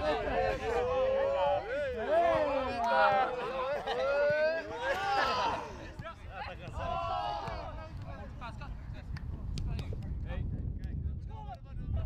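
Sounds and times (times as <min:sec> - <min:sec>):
men calling out: 0:00.0 - 0:06.0.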